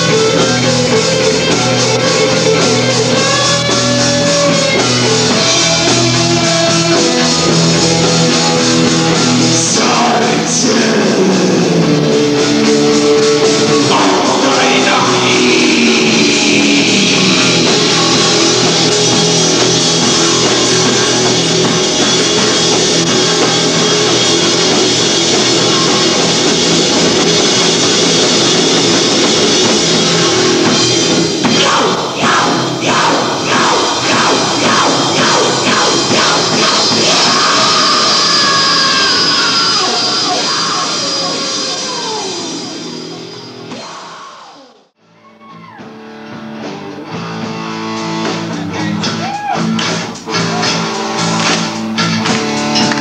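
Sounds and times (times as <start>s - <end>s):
rock band playing live: 0.0s - 53.0s.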